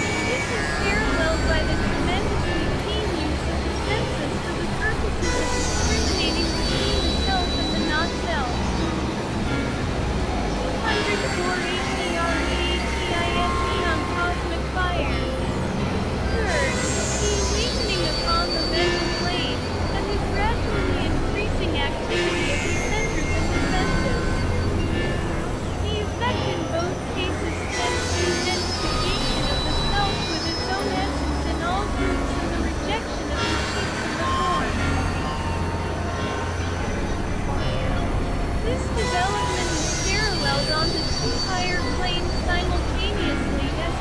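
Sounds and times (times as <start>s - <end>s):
low drone: 0.0s - 44.0s.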